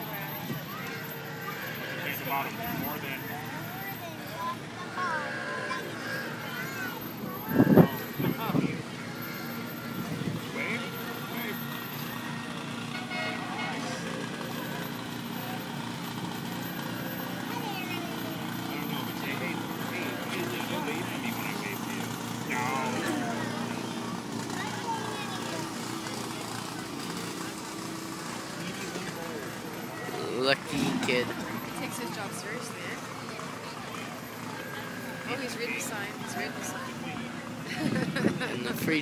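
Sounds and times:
crowd chatter: 0.0s - 39.0s
fire truck engine running: 0.0s - 39.0s.

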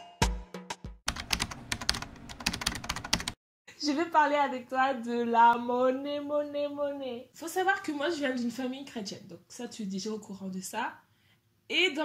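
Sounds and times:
percussive intro music: 0.0s - 1.0s.

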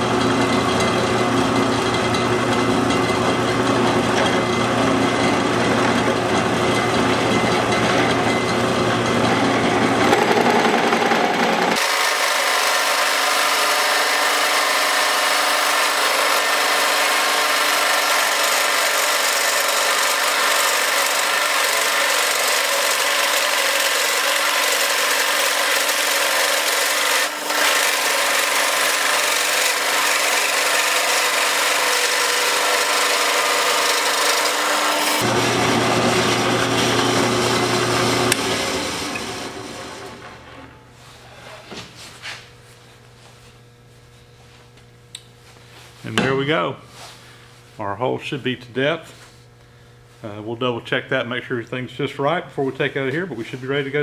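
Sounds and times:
drill press motor hum: 0.0s - 40.9s
drill bit cutting wood: 9.7s - 40.2s.

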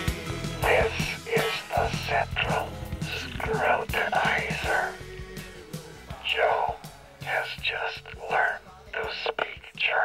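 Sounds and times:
quiet background music: 0.0s - 10.0s
person whispering: 0.6s - 5.0s, 6.2s - 10.0s.

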